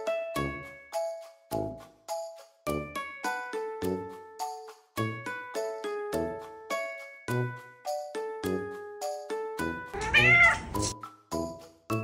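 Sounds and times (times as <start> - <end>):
plucked background music: 5.0 - 12.0
cat meowing angrily: 10.0 - 10.8.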